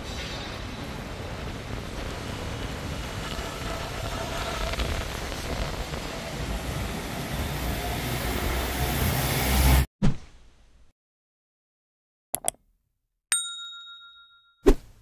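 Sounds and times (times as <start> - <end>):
traffic and rain hiss: 0.0 - 9.8.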